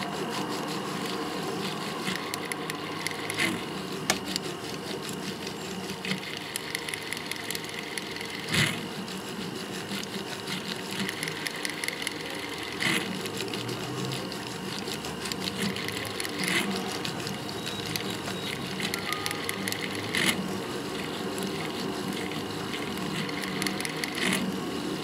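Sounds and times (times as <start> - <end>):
steady hum: 0.0 - 25.0.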